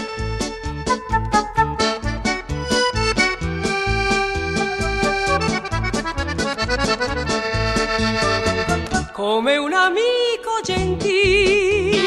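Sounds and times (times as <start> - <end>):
bass and chord accompaniment: 0.0 - 9.1
accordion melody: 0.0 - 9.2.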